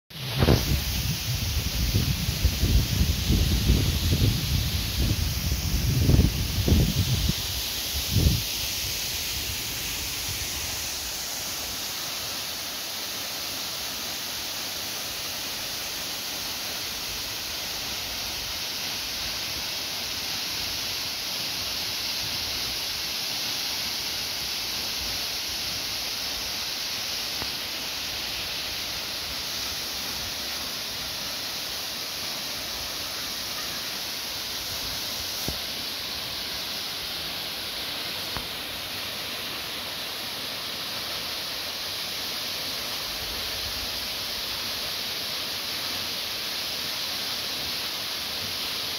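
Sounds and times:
waterfall rushing onto rock: 0.1 - 48.9.

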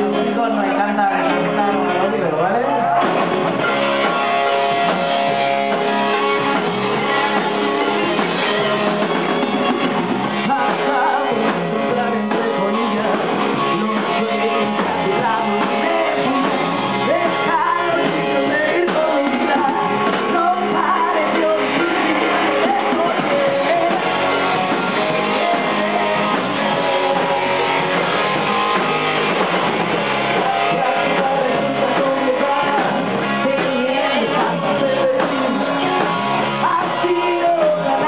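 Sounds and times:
electric guitar through amp: 0.0 - 38.0
live rock band playing: 0.0 - 38.0.

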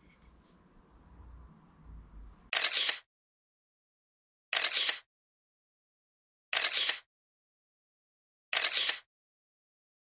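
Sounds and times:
camera shutter sound effect: 2.5 - 3.1, 4.5 - 5.1, 6.5 - 7.1, 8.5 - 9.1.

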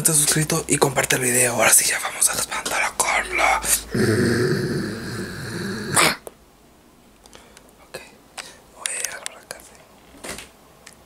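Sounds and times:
deep growling demonic roar: 3.1 - 6.2.

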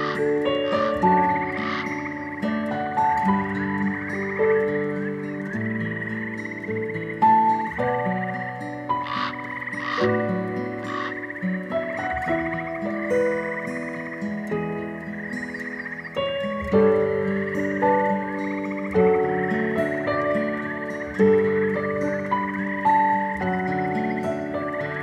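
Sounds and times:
frogs trilling: 0.0 - 25.0
loud frog croaks: 0.0 - 25.0
soft plucked-string music: 0.0 - 25.0.

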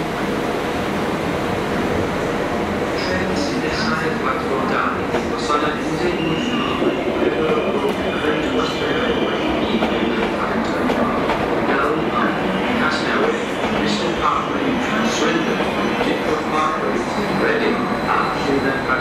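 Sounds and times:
train rumbling past: 0.0 - 19.0
faint voices: 3.0 - 19.0.

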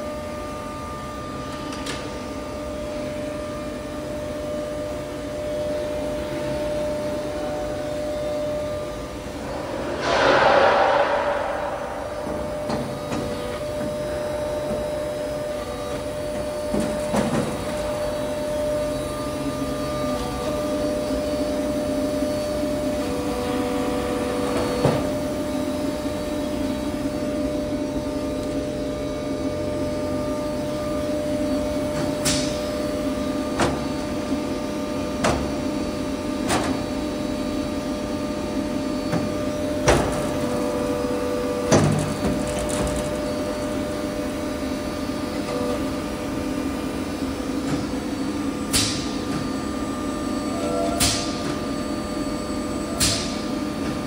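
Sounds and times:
machinery humming: 8.6 - 14.1.

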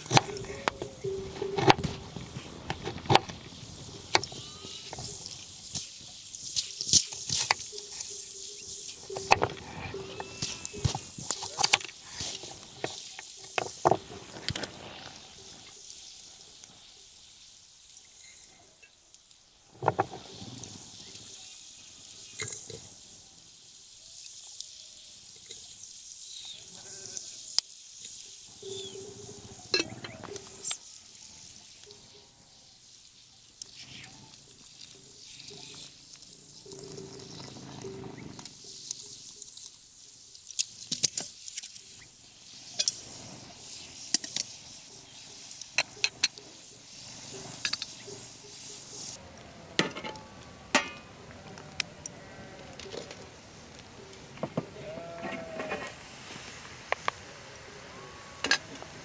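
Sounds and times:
glass teapot clinking: 29.7 - 30.0.

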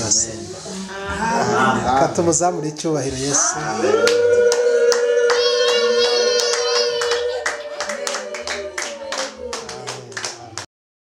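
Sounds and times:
group clapping in rhythm: 3.5 - 10.7.

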